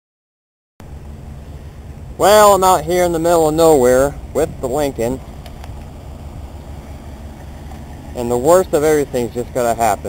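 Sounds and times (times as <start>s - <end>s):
car engine idling: 0.8s - 10.0s.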